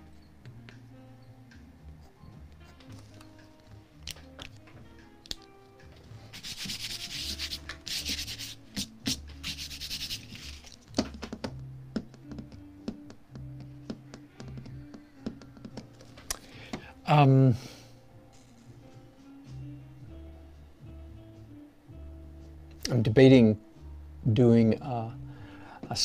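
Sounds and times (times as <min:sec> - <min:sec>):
quiet background music: 0:00.0 - 0:26.0.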